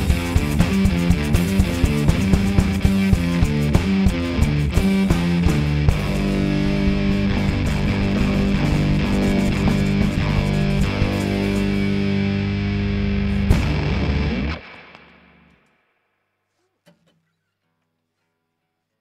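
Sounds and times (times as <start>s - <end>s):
sharp drum hit: 0.0s - 12.0s, 13.5s - 14.1s
acoustic guitar and drums playing: 0.0s - 15.1s.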